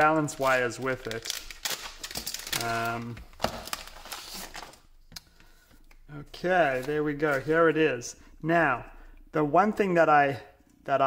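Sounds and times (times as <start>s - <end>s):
plastic bag crinkling: 0.0s - 4.9s.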